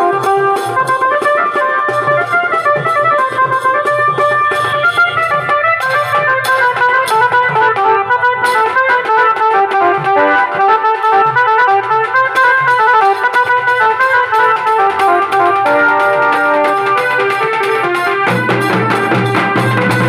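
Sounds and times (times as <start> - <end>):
dhol drums: 0.0 - 20.0
electronic keyboard melody: 0.0 - 20.0.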